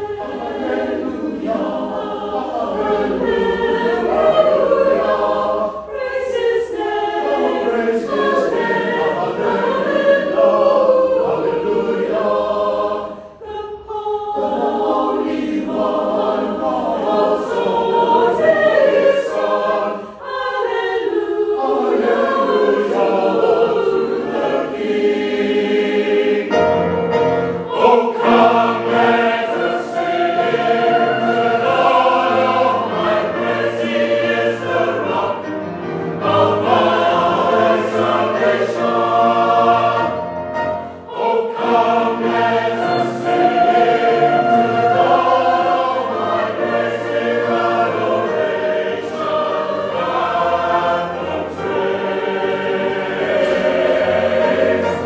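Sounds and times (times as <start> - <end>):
mixed choir singing a hymn: 0.0 - 55.0.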